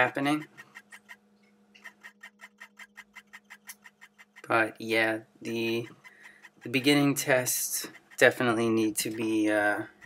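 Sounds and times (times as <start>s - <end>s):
low steady hum: 0.0s - 10.0s
rapid faint clicks: 0.2s - 4.6s, 5.6s - 9.3s.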